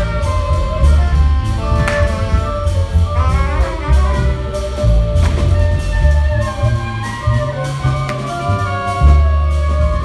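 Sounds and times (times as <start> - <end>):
small jazz band playing: 0.0 - 10.0.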